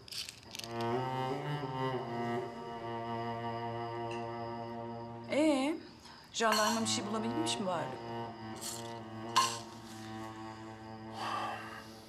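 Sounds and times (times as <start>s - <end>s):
low bowed strings chord: 0.5s - 5.4s
cutlery clink: 6.5s - 6.9s.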